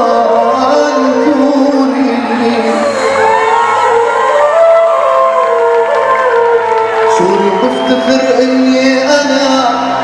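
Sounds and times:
bass guitar: 0:00.0 - 0:07.6
crowd cheering and whooping: 0:00.0 - 0:10.0
live band playing: 0:00.0 - 0:10.0.

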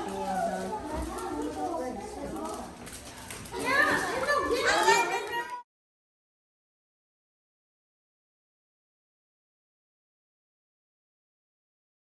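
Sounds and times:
chatter of children and adults: 0:00.0 - 0:05.6
child's high voice: 0:03.5 - 0:05.6.

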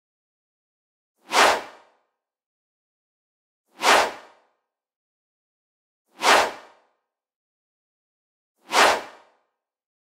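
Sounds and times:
whoosh transition swish: 0:01.2 - 0:02.0, 0:03.7 - 0:04.5, 0:06.1 - 0:06.9, 0:08.6 - 0:09.4.

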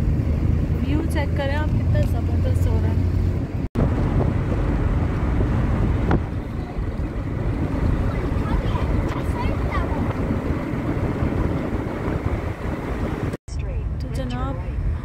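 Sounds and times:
car driving on road: 0:00.0 - 0:15.0
wind buffeting microphone: 0:00.0 - 0:15.0.

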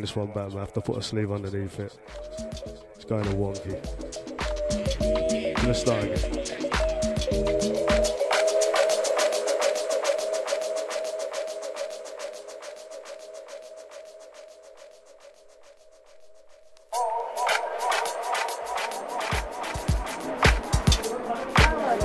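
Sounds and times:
record music starting: 0:02.0 - 0:15.8, 0:16.7 - 0:22.0
kick drums: 0:19.3 - 0:21.0, 0:21.6 - 0:22.0.

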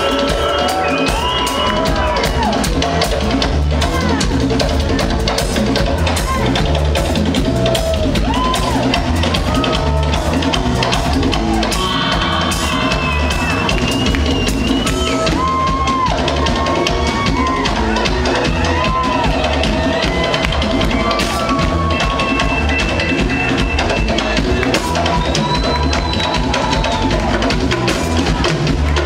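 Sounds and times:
drum kit beat: 0:00.0 - 0:29.0
heavy bass line: 0:00.0 - 0:29.0.

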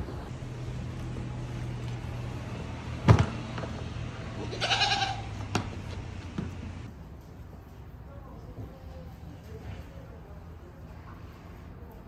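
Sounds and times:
goat bleating: 0:04.4 - 0:05.4.

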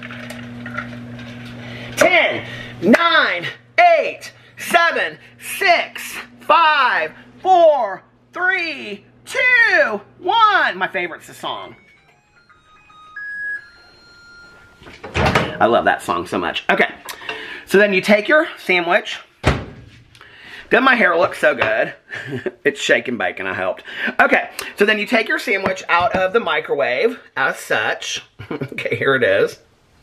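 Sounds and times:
microwave oven humming: 0:00.0 - 0:17.7
microwave beep melody: 0:11.7 - 0:15.1.

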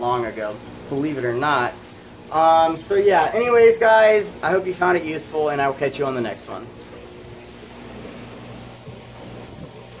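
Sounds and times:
aquarium filters humming: 0:00.0 - 0:10.0.

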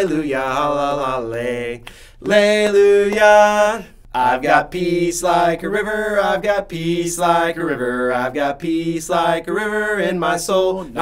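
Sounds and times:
men singing la la: 0:00.0 - 0:11.0.

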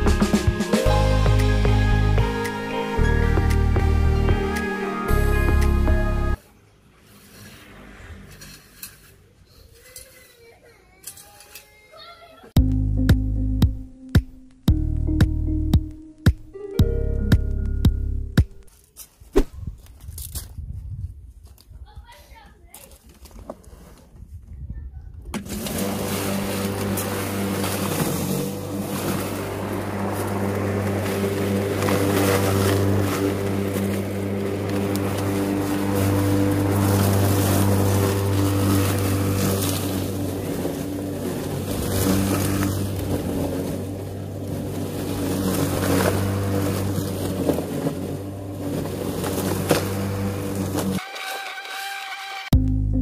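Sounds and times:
electric lawn mower running: 0:25.4 - 0:52.5.

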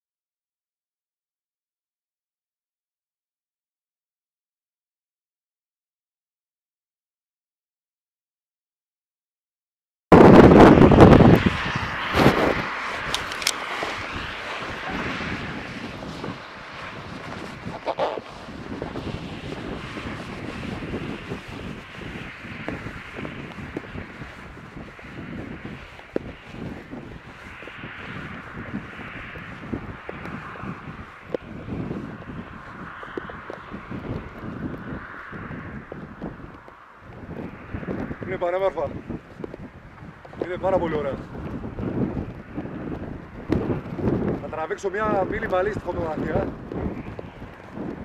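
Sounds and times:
wind buffeting microphone: 0:10.1 - 0:48.0.

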